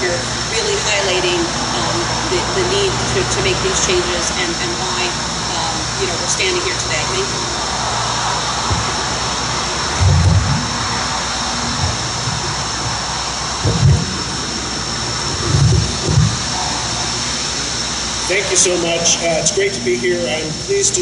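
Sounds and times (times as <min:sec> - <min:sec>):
steady rushing background noise: 0:00.0 - 0:21.0
microphone handling thuds: 0:08.6 - 0:14.4, 0:15.3 - 0:16.6.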